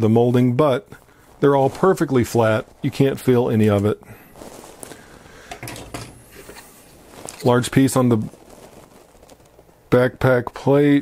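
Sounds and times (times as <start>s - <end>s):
plastic parts rustling and clicking: 3.6s - 9.8s.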